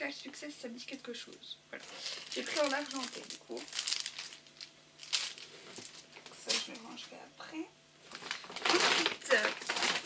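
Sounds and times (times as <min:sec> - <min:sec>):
packaging crinkling: 0:01.8 - 0:07.1, 0:08.0 - 0:10.0.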